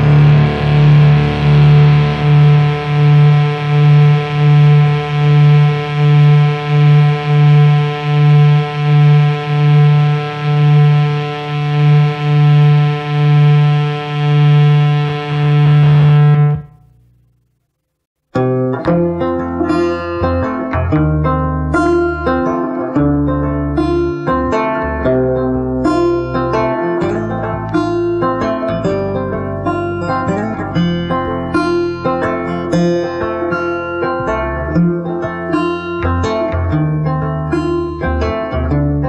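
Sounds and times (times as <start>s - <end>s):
plucked strings: 0.0s - 17.0s, 18.3s - 39.0s
distorted electric guitar note: 0.0s - 39.0s.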